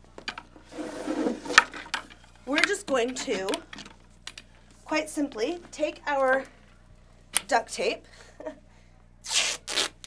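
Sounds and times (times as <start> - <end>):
duct tape ripping off roll: 9.2 - 10.0.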